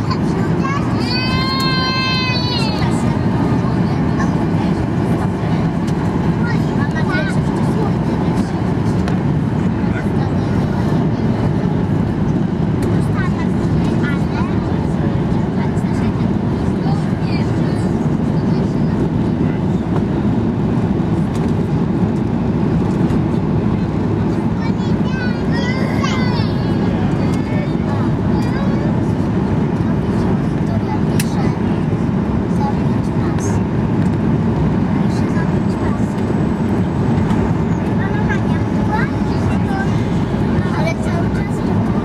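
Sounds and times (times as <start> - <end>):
airplane cabin roar: 0.0 - 42.0.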